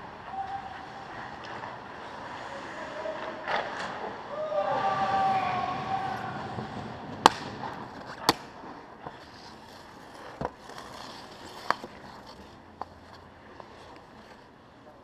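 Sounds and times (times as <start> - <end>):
steady rink hiss: 0.1 - 14.9
hockey puck cracks: 6.3 - 8.6.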